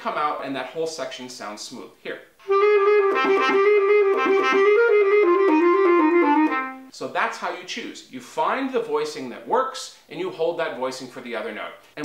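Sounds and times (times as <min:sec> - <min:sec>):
bass clarinet quick slurred passage: 0:02.4 - 0:06.9.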